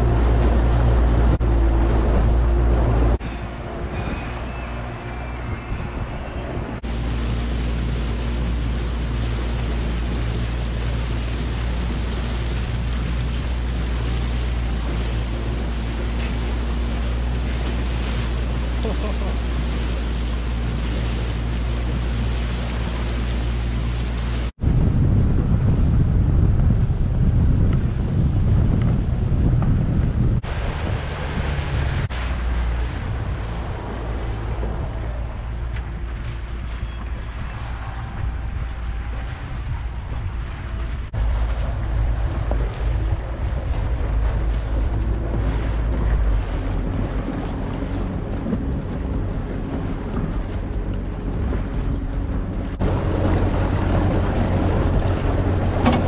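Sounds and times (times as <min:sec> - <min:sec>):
wind buffeting microphone: 0:00.0 - 0:18.8, 0:19.4 - 0:56.0
outboard motor hum: 0:00.0 - 0:56.0
water rushing past hull: 0:00.0 - 0:56.0.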